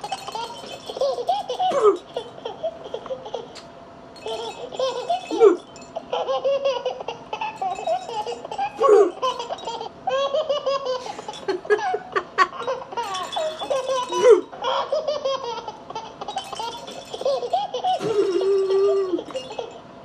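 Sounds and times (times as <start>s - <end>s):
woman laughing: 10.9s - 14.5s, 17.9s - 19.5s.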